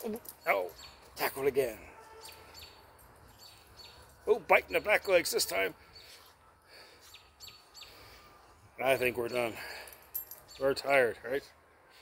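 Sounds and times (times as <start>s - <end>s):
faint bird chirping: 5.0s - 11.2s.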